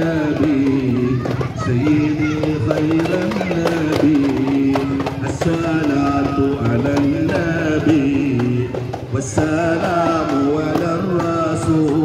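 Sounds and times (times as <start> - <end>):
drum strokes: 0.0 - 12.0.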